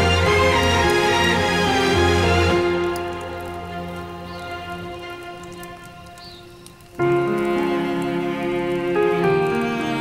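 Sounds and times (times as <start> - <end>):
score music with held notes: 0.0 - 6.2
sustained string music: 0.0 - 10.0.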